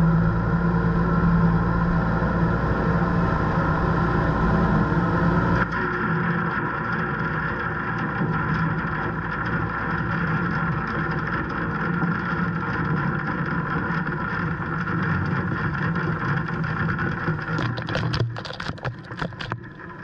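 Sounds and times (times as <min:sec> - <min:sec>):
tractor engine running: 0:00.0 - 0:05.8.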